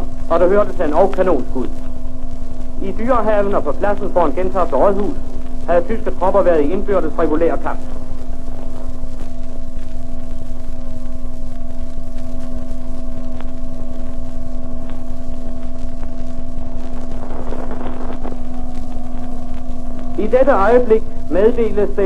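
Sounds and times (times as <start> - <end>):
constant low whistle: 0.0 - 22.0.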